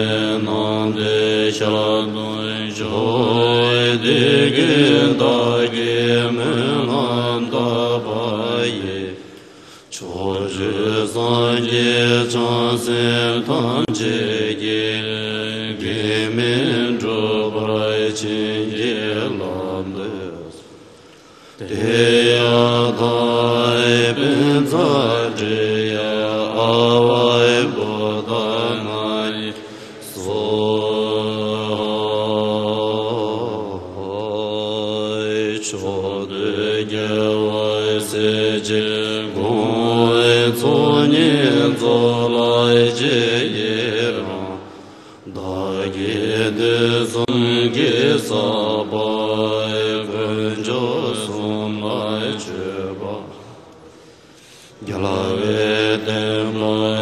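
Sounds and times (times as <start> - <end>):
monks chanting in unison: 0.0 - 57.0.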